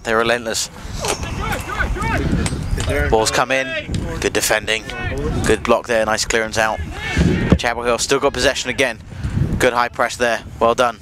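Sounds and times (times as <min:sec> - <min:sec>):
steady low rumble: 0:00.6 - 0:10.7
distant players shouting: 0:01.0 - 0:09.0.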